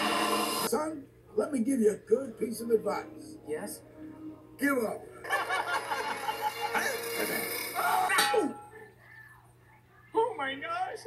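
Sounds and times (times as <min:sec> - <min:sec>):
metallic sound effects: 0:05.9 - 0:08.5.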